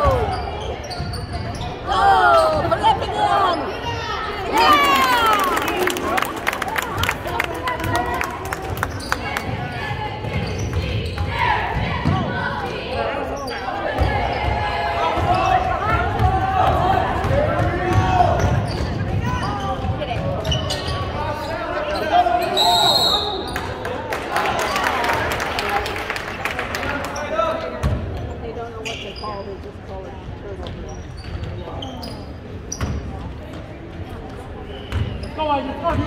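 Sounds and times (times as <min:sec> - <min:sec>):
echoing voices in hall: 0:00.0 - 0:36.0
referee whistle: 0:22.4 - 0:23.6.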